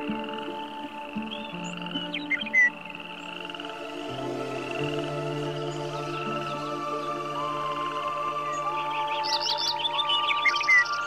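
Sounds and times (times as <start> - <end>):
soft ambient music: 0.0 - 11.0
songbird chirping: 0.0 - 11.0.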